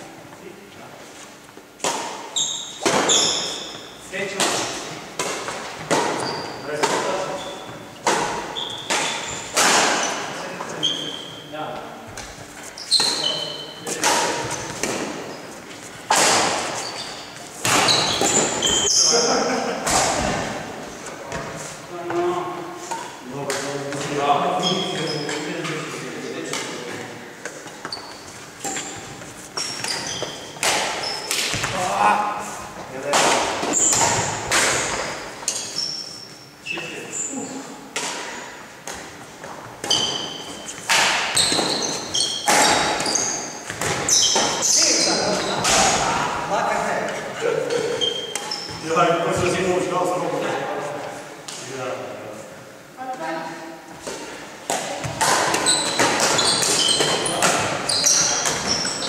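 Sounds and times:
sneakers squeaking on wooden floor: 0:01.5 - 0:19.4, 0:23.9 - 0:32.0, 0:33.5 - 0:46.3, 0:47.1 - 0:49.6, 0:53.9 - 0:59.0
racket striking shuttlecock: 0:29.6 - 0:31.7, 0:33.1 - 0:35.6, 0:39.8 - 0:44.6, 0:54.0 - 0:58.7.

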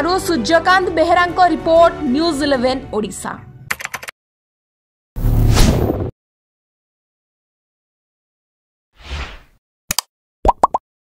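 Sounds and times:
rising bloop pops: 0:10.4 - 0:10.8.

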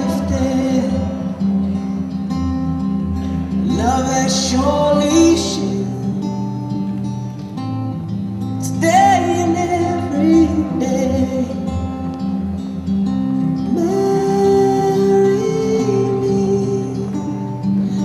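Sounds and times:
instrumental backing: 0:00.0 - 0:18.0
person singing: 0:03.6 - 0:06.2, 0:13.7 - 0:18.0.

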